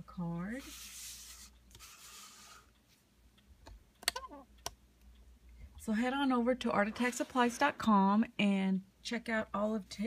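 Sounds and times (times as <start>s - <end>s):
paper card rustling and scraping: 0.6s - 2.7s.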